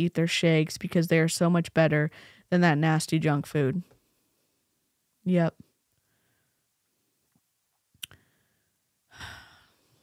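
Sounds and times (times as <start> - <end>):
mouth click: 8.0 - 8.2
soft sigh-like breath: 8.1 - 10.0.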